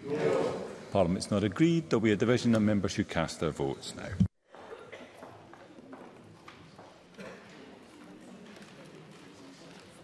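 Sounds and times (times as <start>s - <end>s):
low murmur of voices: 4.0s - 10.0s.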